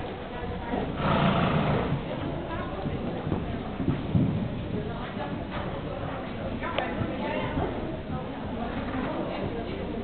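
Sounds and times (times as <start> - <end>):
horse cantering: 0.0 - 10.0
horse blowing breathily: 0.9 - 2.1.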